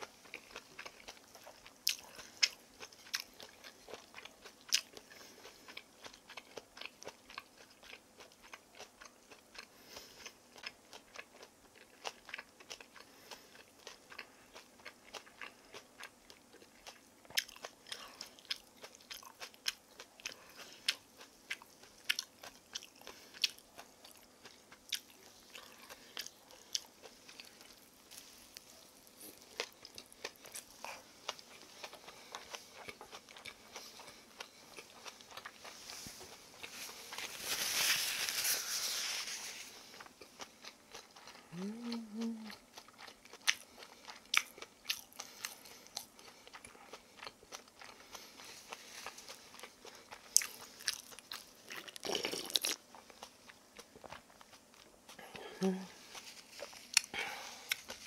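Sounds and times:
crunching and chewing crispy pancake: 0.0 - 58.0.

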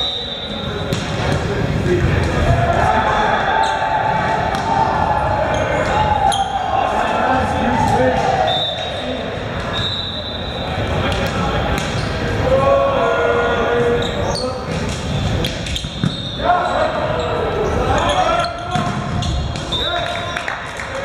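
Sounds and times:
players shouting: 0.0 - 21.0
volleyball slaps: 0.9 - 2.6, 4.3 - 4.9, 18.7 - 19.8.

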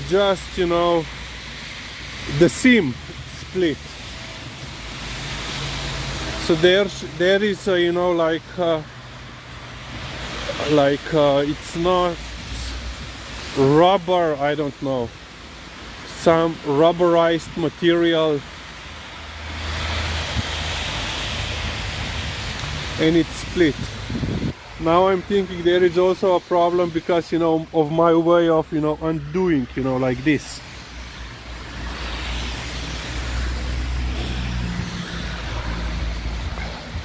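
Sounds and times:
car approaching on wet road: 0.0 - 37.0
low traffic rumble: 0.0 - 37.0.

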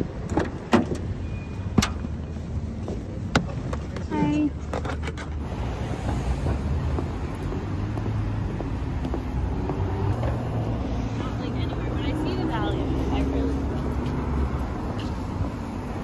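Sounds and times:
rumble of passing cars: 0.0 - 16.0
passers-by talking: 6.0 - 16.0.

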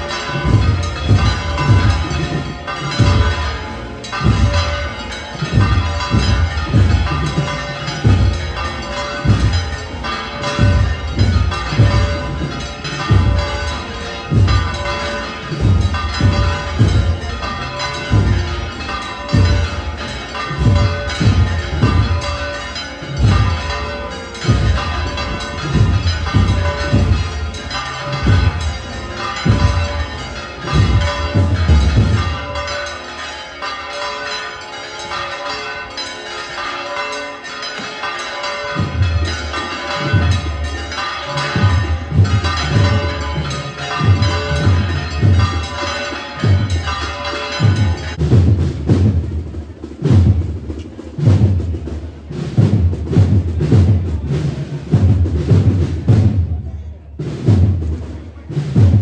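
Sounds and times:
heavy low drum beat: 0.0 - 32.8, 38.8 - 59.0
church bells ringing: 0.0 - 59.0
music: 10.6 - 33.0, 44.0 - 59.0.

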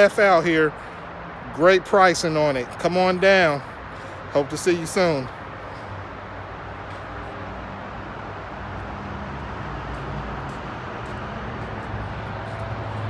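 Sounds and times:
outdoor traffic noise: 0.0 - 13.0.

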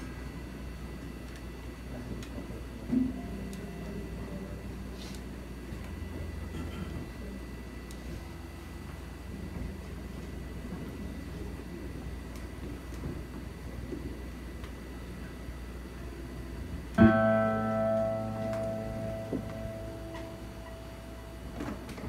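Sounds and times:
steady hum: 0.0 - 22.0
loud chord on amplified instrument: 17.0 - 21.8.

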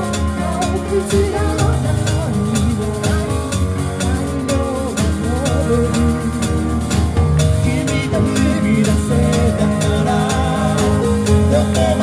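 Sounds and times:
drum kit: 0.0 - 12.0
electric guitar: 0.0 - 12.0
keyboard: 0.0 - 12.0
person singing: 0.0 - 12.0.

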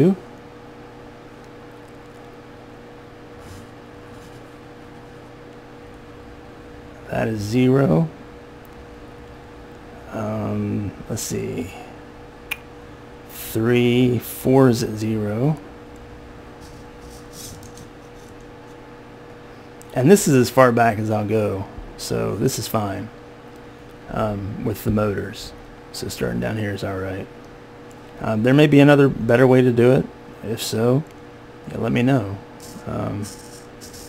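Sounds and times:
low steady hum with tone: 0.0 - 34.0.

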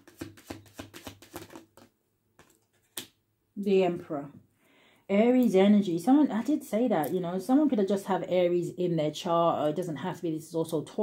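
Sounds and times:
cards being shuffled: 0.0 - 3.2.

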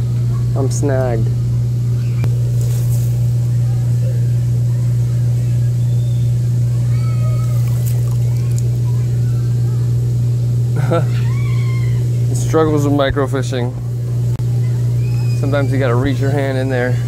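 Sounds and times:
faint wavering voices: 0.0 - 17.0
steady low hum: 0.0 - 17.0.

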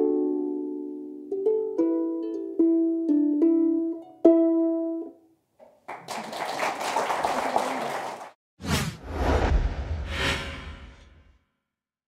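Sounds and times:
applause: 5.6 - 8.4
whoosh with low rumble: 8.7 - 11.3.

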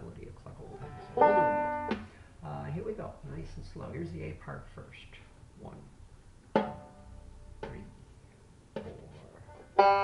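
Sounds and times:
banjo playing: 0.7 - 2.0, 9.5 - 10.0
banjo strings ringing: 0.7 - 2.0, 9.5 - 10.0
taps on banjo: 6.5 - 7.0.

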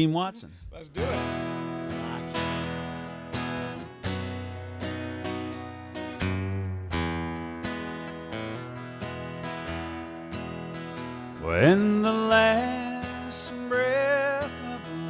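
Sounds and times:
acoustic guitar strumming: 0.8 - 15.0.

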